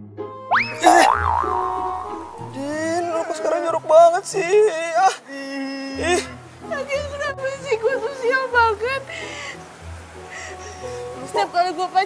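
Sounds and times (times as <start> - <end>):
background music: 0.0 - 12.0
wobbling boing tone: 0.5 - 3.1.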